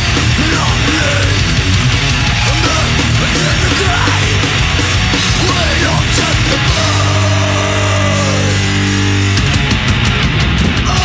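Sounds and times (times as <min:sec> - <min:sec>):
distorted guitar and bass chord: 0:00.0 - 0:11.0.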